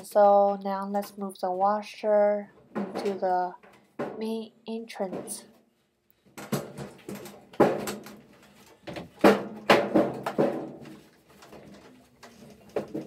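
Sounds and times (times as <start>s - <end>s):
washing machine knocking on floor: 6.4s - 8.1s, 8.9s - 11.0s.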